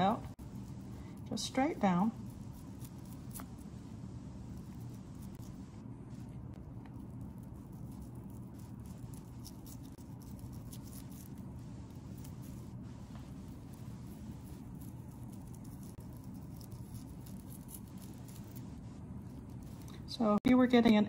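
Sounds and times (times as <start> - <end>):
low room hum: 0.0 - 21.0.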